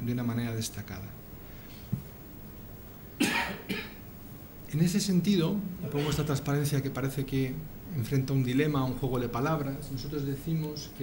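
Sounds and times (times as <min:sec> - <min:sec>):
man coughing: 0:03.2 - 0:04.0, 0:05.9 - 0:06.3.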